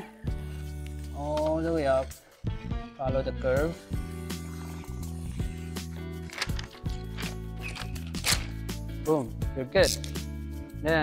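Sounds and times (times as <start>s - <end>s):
background music with low bass: 0.0s - 11.0s.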